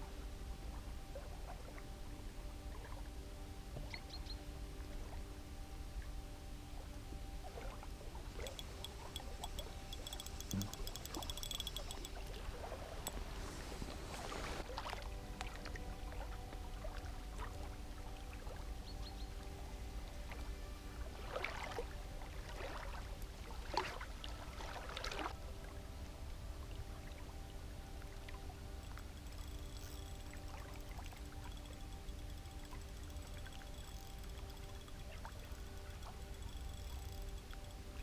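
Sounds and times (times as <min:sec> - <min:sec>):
faint background music: 0:00.0 - 0:38.0
water splashing and sloshing: 0:06.8 - 0:19.5, 0:20.1 - 0:37.7
rapid fine clicking: 0:08.5 - 0:12.2.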